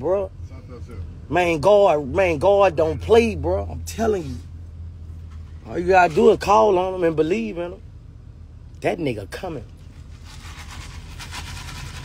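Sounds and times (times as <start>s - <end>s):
vehicle low rumble from cabin: 0.0s - 12.0s.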